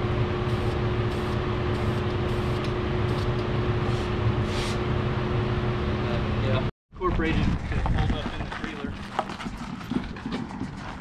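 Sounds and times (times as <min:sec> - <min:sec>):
machine droning: 0:00.0 - 0:06.7.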